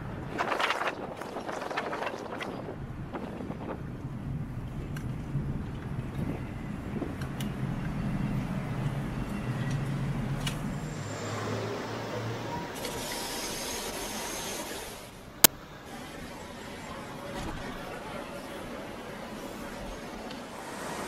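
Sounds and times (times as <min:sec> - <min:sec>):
traffic rumble: 0:00.0 - 0:21.0
vehicle engine hum: 0:02.7 - 0:21.0.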